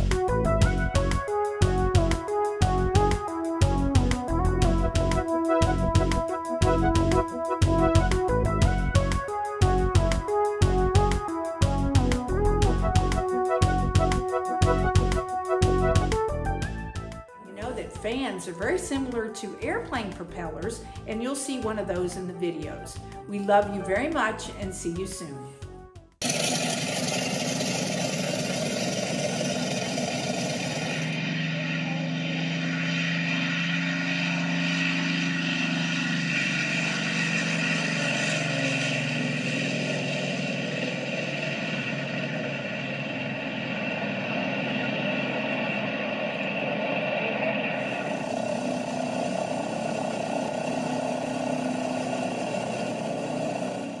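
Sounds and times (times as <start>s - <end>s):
aircraft piston engines droning: 0.0s - 24.1s, 26.2s - 54.0s.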